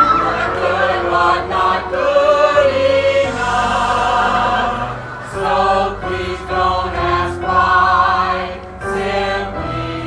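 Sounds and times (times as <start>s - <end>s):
chorus singing held notes: 0.0s - 10.0s.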